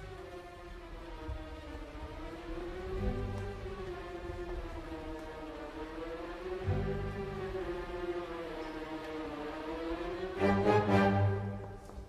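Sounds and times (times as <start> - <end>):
orchestra holding long note: 4.8 - 11.8.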